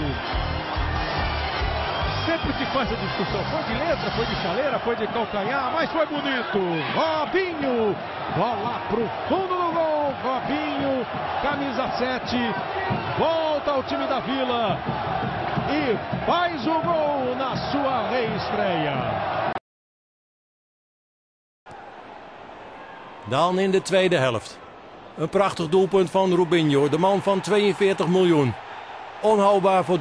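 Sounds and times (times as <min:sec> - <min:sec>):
stadium crowd noise: 0:00.0 - 0:19.6, 0:21.7 - 0:30.0.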